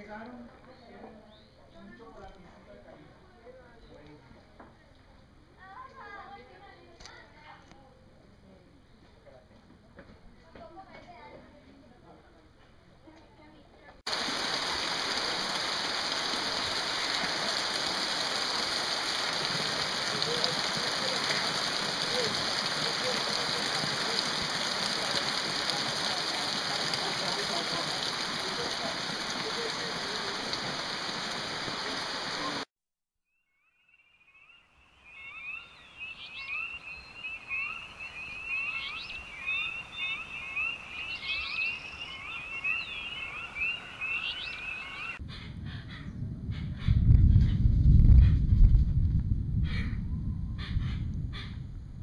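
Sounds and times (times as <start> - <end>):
heavy rain on a lake: 14.1 - 32.7, 35.4 - 45.2
birds chirping: 33.6 - 46.2
loud low rumble: 45.2 - 52.0.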